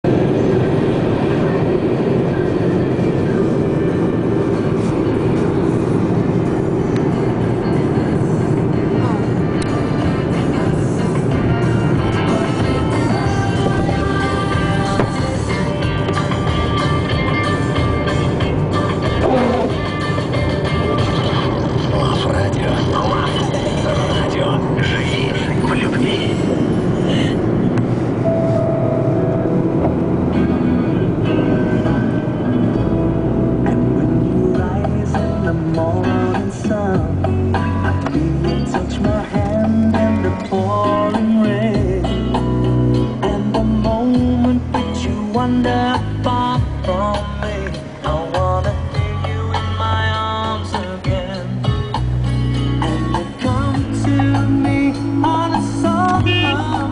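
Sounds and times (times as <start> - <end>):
car driving rumble: 0.0 - 56.9
music with singing: 6.2 - 28.8, 29.4 - 56.9.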